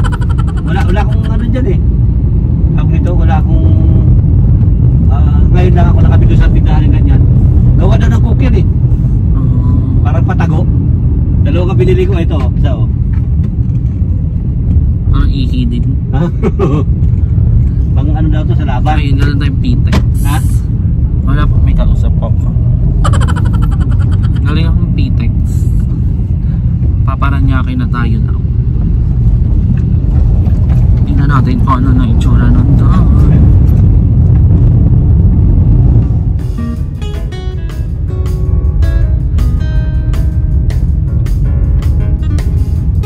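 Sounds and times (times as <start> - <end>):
person laughing: 0.0 - 1.4, 16.2 - 16.9, 23.0 - 24.7
car rumble from inside cabin: 0.0 - 43.0.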